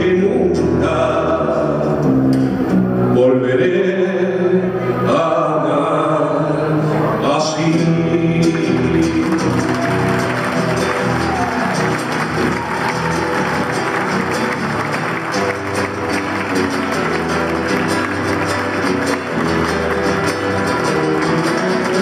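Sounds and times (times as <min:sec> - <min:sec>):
acoustic guitar strumming: 0:00.0 - 0:22.0.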